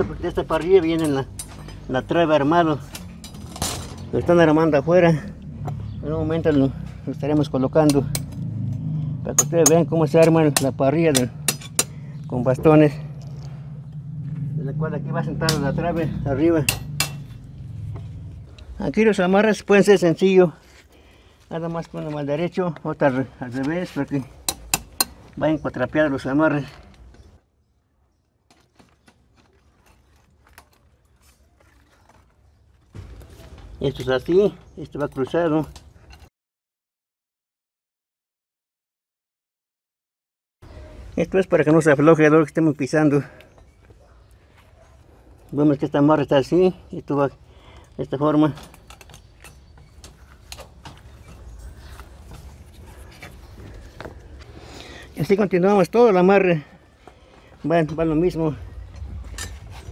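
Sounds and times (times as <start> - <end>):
metallic clicks and wire scraping: 0.5 - 4.2, 47.8 - 54.5, 58.9 - 59.9
low steady rumble: 11.5 - 18.8.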